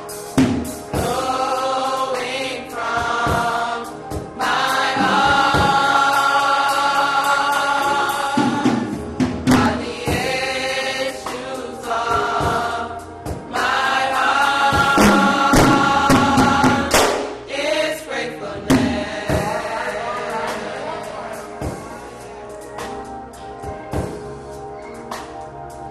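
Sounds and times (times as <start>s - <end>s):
gospel choir singing: 0.0s - 25.9s
sharp percussive hits: 14.7s - 17.5s.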